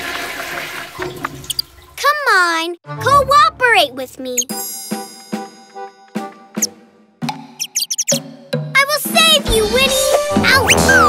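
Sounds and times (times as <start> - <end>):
faint high chirps: 7.6 - 8.2.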